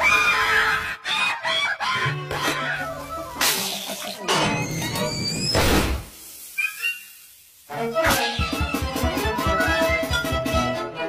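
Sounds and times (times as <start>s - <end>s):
cartoon squawking calls: 6.6s - 7.2s, 8.0s - 9.0s.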